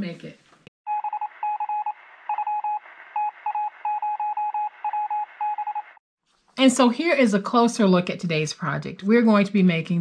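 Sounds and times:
rapid electronic beeps: 0:00.9 - 0:06.0.

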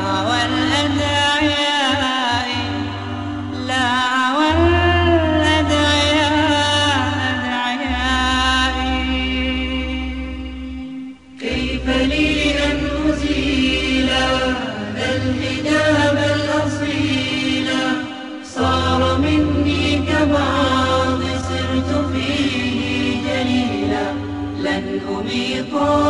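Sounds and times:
steady low drone: 0:02.4 - 0:26.0
voices chanting a melody: 0:11.3 - 0:26.0.

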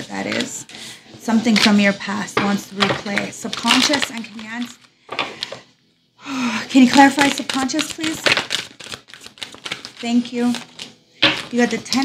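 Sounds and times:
cards being shuffled: 0:02.4 - 0:05.6, 0:06.8 - 0:12.0.

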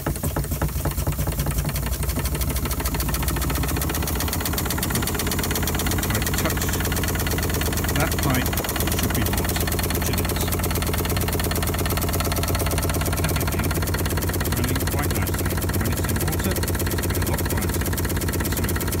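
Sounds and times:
constant low hum: 0:00.0 - 0:19.0
steam pump mechanical beat: 0:00.0 - 0:19.0.

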